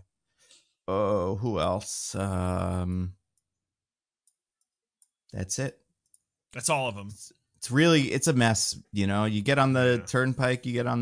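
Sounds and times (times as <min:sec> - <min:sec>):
person's voice: 0:06.6 - 0:11.0.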